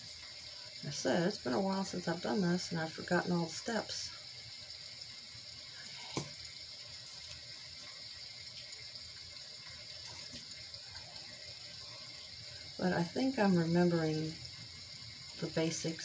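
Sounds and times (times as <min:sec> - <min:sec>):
rain sound hiss from sound machine: 0:00.0 - 0:16.0.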